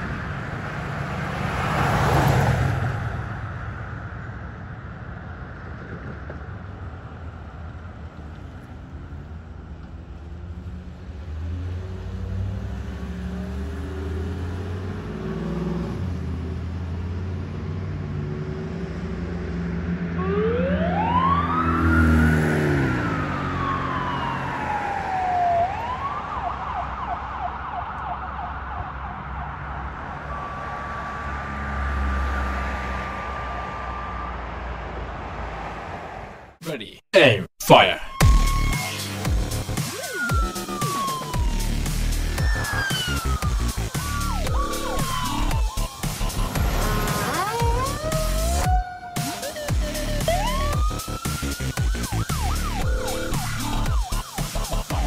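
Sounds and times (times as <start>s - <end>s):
ambulance engine accelerating: 0.0s - 36.6s, 37.2s - 55.0s
electronic siren wailing and yelping: 20.2s - 30.7s, 37.8s - 55.0s.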